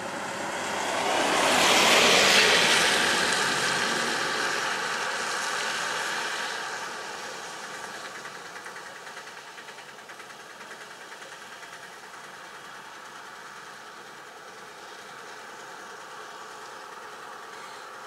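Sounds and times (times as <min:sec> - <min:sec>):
truck passing by: 0:00.0 - 0:18.0
vehicle engine idling: 0:00.0 - 0:18.0.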